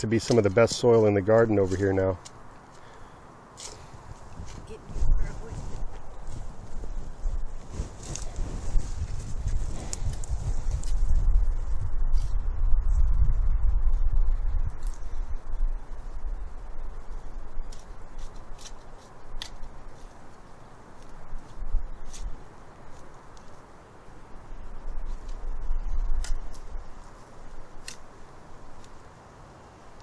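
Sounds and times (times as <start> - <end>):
spade digging into soil: 3.6 - 4.6
low rumble: 4.2 - 17.5.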